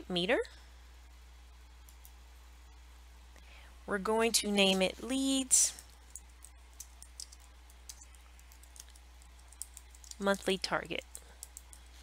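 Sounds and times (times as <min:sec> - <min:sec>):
typing on computer keyboard: 0:11.0 - 0:11.9.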